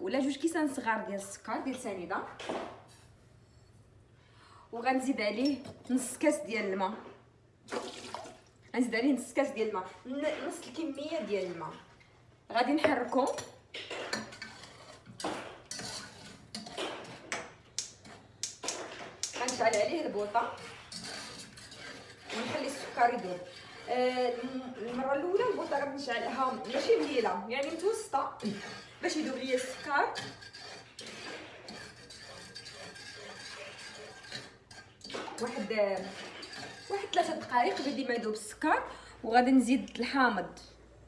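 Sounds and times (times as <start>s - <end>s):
utensil stirring in metal saucepan: 9.2s - 39.0s
spoon clinking and scraping pot: 12.8s - 38.5s.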